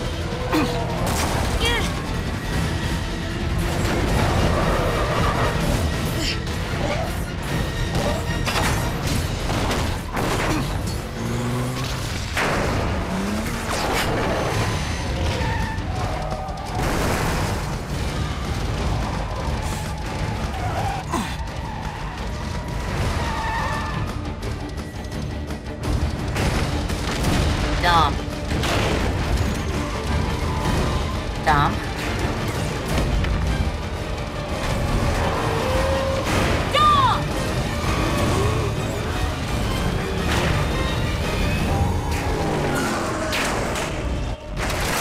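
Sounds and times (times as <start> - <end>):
film score music: 0.0 - 45.0
car engine: 8.7 - 27.6, 28.4 - 44.4
car tyres: 9.6 - 27.2.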